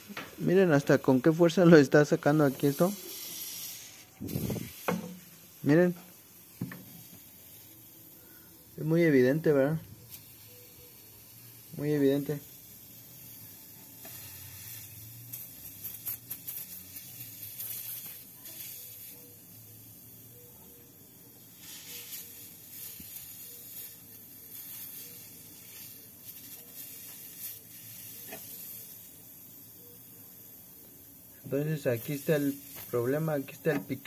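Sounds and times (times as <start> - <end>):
gas hissing from a leak: 0.0 - 34.0.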